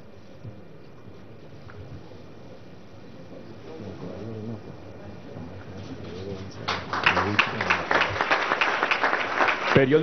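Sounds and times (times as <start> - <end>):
applause: 6.6 - 10.0.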